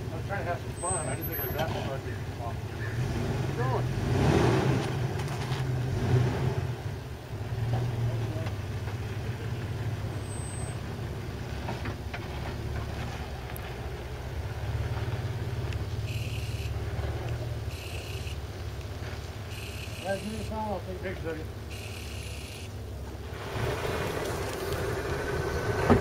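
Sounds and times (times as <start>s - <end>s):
engine low rumble: 0.0s - 26.0s.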